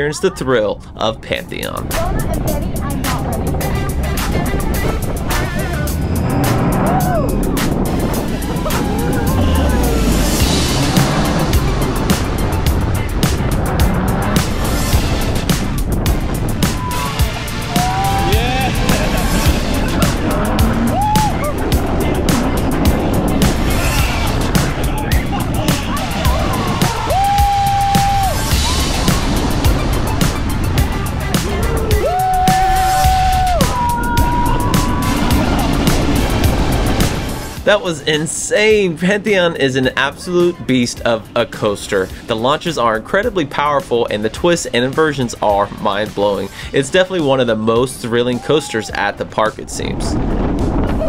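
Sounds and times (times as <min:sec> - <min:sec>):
roller coaster train on track: 0:00.0 - 0:51.0
rushing wind: 0:00.0 - 0:51.0
background music with steady beat: 0:01.5 - 0:51.0
riders screaming: 0:05.5 - 0:07.6, 0:08.3 - 0:10.4, 0:16.7 - 0:21.8, 0:25.3 - 0:29.4, 0:31.5 - 0:35.9.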